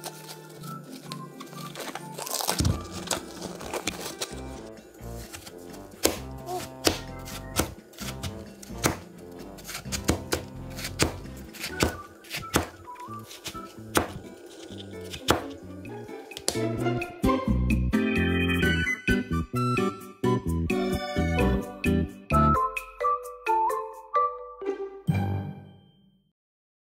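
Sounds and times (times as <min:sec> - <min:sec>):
cling wrap crinkling: 0:00.0 - 0:05.9
background music: 0:00.0 - 0:26.1.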